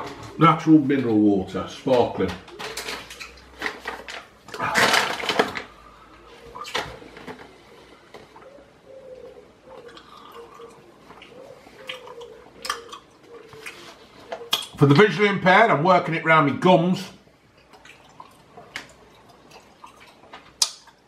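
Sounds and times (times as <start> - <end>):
mouth chewing sounds: 9.7 - 14.8, 17.6 - 21.0.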